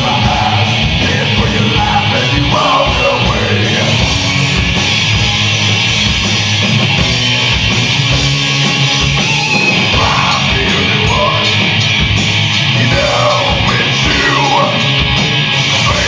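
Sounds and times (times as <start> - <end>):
bass guitar: 0.0 - 16.0
drum kit with cymbal crashes: 0.0 - 16.0
electric guitar: 0.0 - 16.0.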